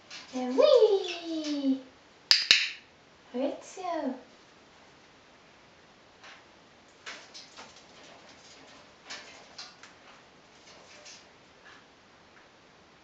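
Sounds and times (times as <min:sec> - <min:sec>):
parrot feet clicking and scuffling: 0:00.0 - 0:02.8, 0:06.2 - 0:11.9.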